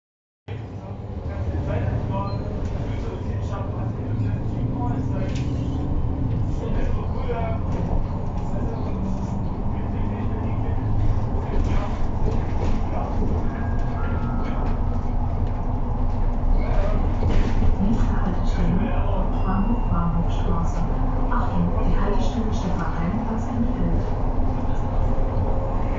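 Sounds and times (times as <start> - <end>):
bus engine and road rumble: 0.5 - 25.9.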